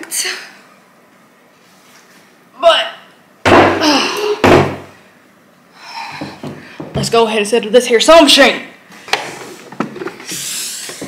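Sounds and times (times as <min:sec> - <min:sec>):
chair thudding against table: 0:04.4 - 0:04.9.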